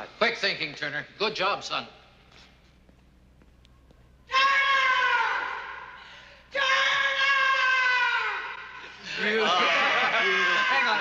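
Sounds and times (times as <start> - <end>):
woman screaming: 4.3 - 5.9, 6.5 - 8.8, 9.4 - 11.0.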